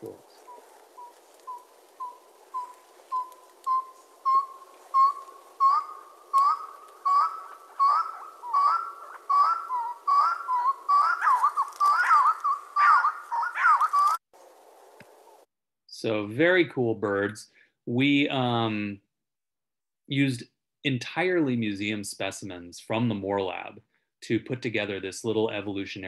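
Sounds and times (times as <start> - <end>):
bird whistled notes: 0.5 - 14.2.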